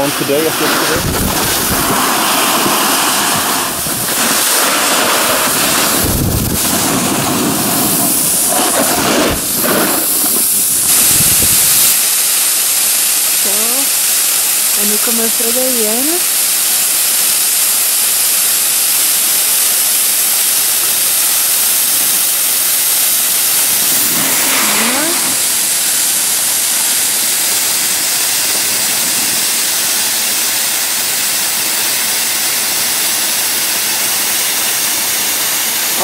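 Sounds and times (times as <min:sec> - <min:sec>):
loud steady hiss: 0:00.0 - 0:36.0.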